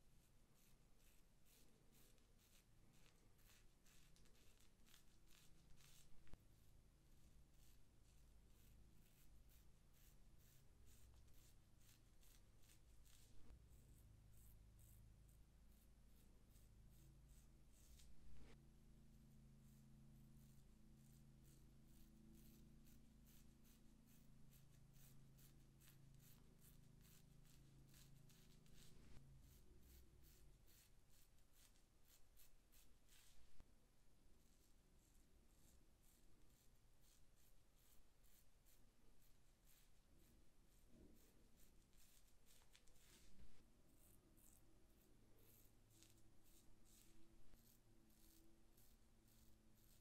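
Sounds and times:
razor scraping through hair: 44.0 - 50.0.

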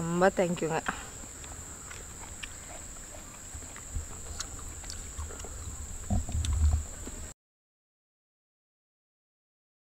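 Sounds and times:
steady high-pitched whine: 0.0 - 7.3
low animal call: 1.4 - 7.3
low rumble: 3.5 - 7.3.

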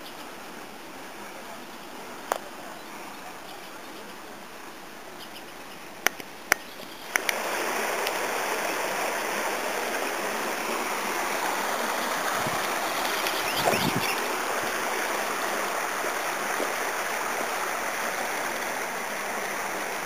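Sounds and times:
stream water rushing: 0.0 - 5.2, 5.8 - 20.0.

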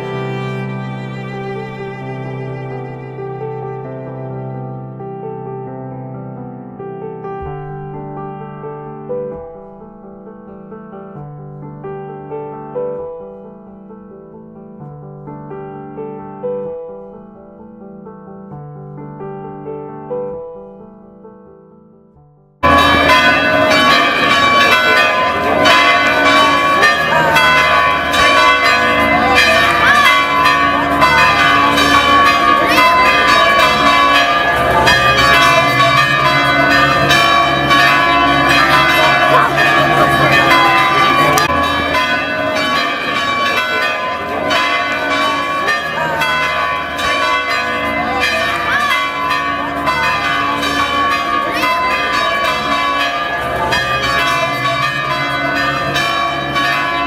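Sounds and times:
church bells pealing: 0.0 - 5.4, 22.6 - 57.0.

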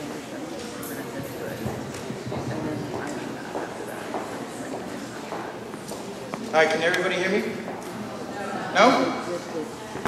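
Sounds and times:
echoing hall room noise: 0.0 - 10.0
indistinct background chatter: 0.0 - 10.0.

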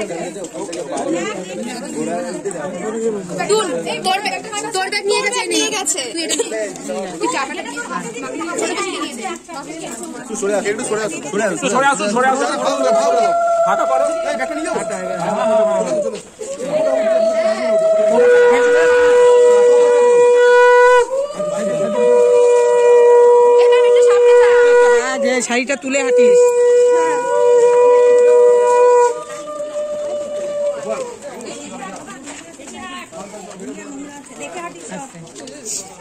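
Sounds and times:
crowd chatter: 0.0 - 36.0
conch shell blown: 17.7 - 25.2, 25.9 - 30.7.

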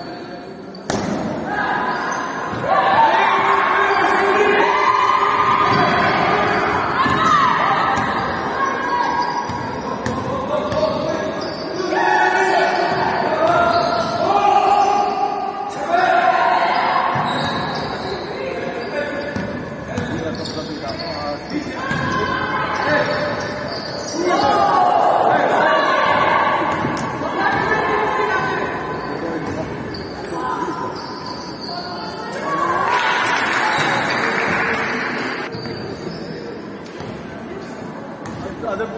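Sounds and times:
basketball bouncing on wooden court: 9.5 - 10.9.

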